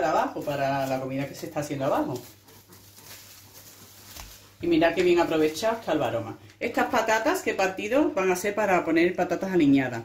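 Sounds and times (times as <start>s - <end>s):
cling film crinkling: 0.0s - 5.6s.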